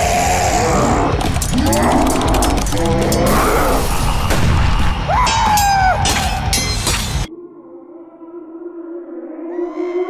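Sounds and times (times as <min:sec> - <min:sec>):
rapid clicks: 0:01.1 - 0:03.5.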